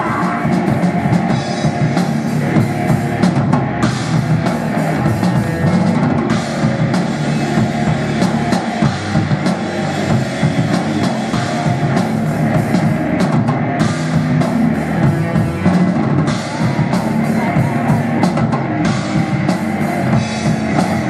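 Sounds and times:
drum kit: 0.0 - 21.0
electric guitars: 0.0 - 21.0.

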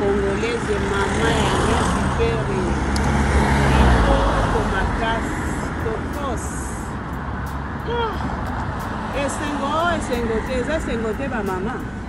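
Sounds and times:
cars passing with low rumble: 0.0 - 12.0.

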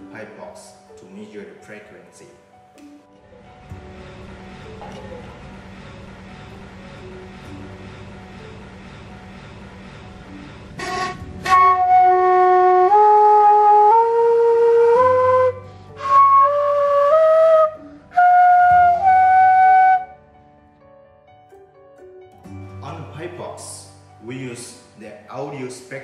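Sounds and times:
recorder playing ascending scale: 10.8 - 20.1.

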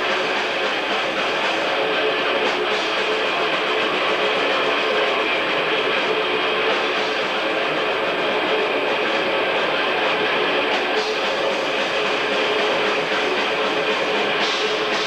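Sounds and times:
death metal band playing live: 0.0 - 15.0.

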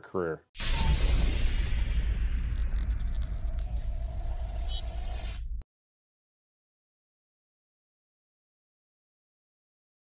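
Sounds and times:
deep rumble: 0.6 - 5.6
tiny high glints: 0.6 - 5.6.

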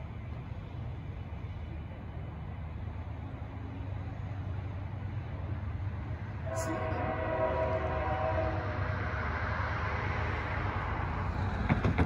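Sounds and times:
train rumbling: 0.0 - 12.0
locomotive air horn chord: 6.4 - 9.0.

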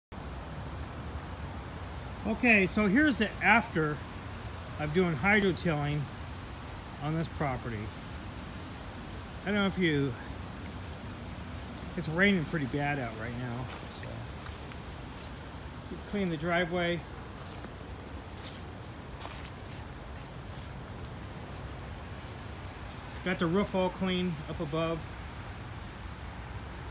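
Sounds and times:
soft rain hiss: 0.1 - 26.9.

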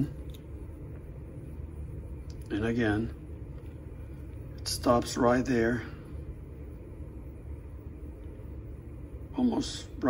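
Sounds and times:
low room tone hum: 0.0 - 10.0.

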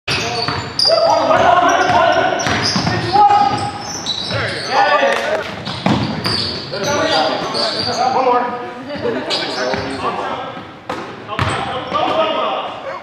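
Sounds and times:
players' voices: 0.1 - 13.0.

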